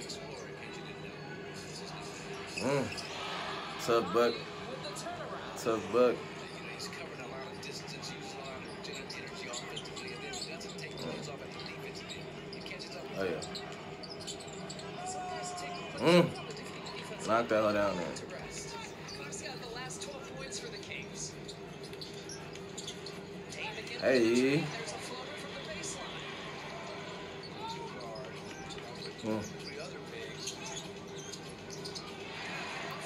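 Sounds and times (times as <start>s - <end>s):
arena crowd noise: 0.0s - 33.0s
commentator talking: 5.5s - 6.2s, 15.7s - 16.6s, 17.2s - 19.0s.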